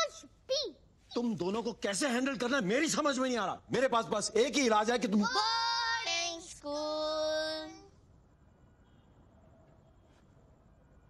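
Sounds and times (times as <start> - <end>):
child singing long notes: 5.3 - 7.9.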